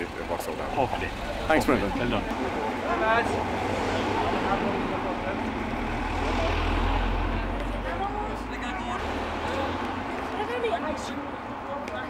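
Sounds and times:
murmur of people talking: 0.0s - 12.0s
car driving past: 2.5s - 10.1s.

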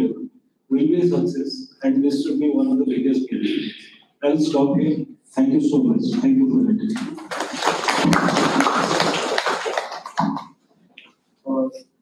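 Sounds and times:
people applauding: 6.9s - 10.5s.

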